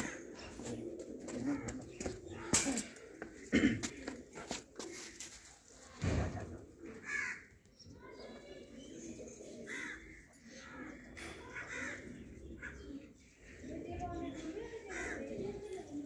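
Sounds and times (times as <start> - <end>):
harsh high-pitched pigeon calls: 0.0 - 13.4
pigeons cooing: 0.0 - 16.0
thump: 6.0 - 6.6.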